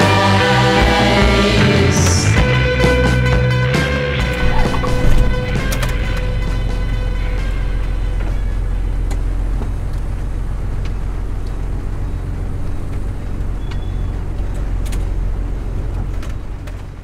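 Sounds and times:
pickup truck engine and road rumble: 2.0s - 17.0s
sharp clicks and rattles: 4.3s - 7.0s, 12.8s - 17.0s.

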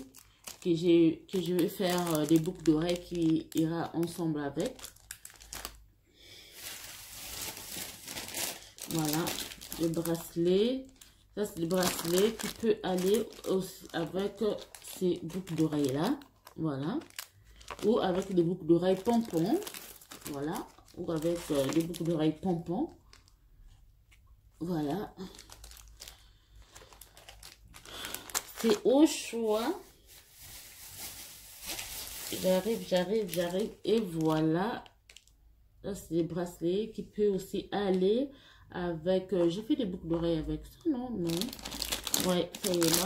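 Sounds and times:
plastic bags rustling: 0.0s - 23.4s, 24.6s - 35.3s, 41.1s - 43.0s
plastic packaging crinkling: 0.0s - 35.4s, 41.2s - 43.0s.

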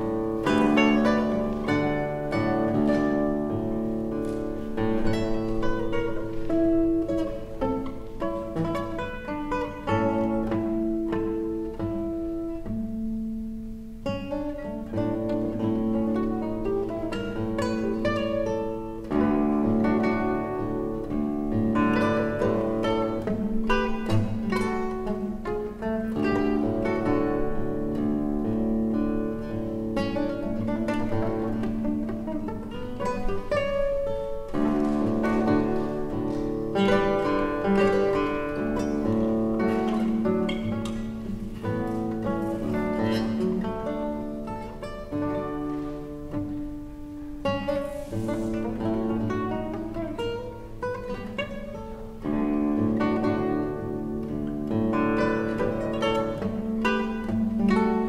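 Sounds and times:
classical guitar fingerstyle: 0.0s - 58.0s.

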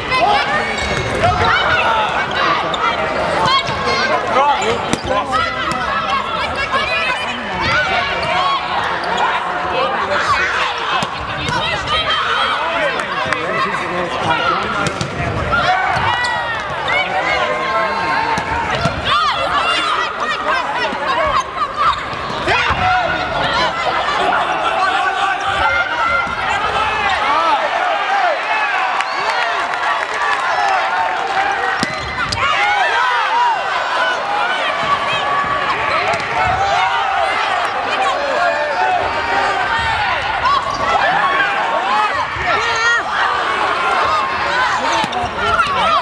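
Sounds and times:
crowd shouting: 0.0s - 46.0s
volleyball hits: 14.6s - 16.9s, 18.3s - 19.1s, 31.8s - 32.5s, 36.0s - 36.6s.

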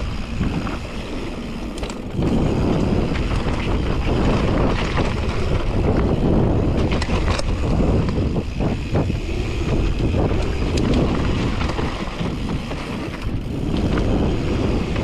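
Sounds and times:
bike rattles and knocks: 0.0s - 15.0s
tyres rumbling on dirt: 0.0s - 15.0s
wind rushing over microphone: 0.0s - 15.0s.

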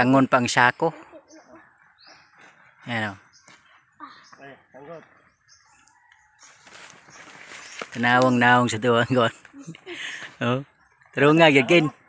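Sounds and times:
distant bird calling: 0.0s - 12.0s.

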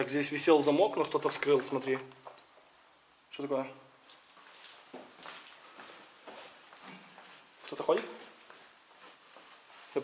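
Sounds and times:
footsteps on concrete stairs: 4.3s - 9.7s.

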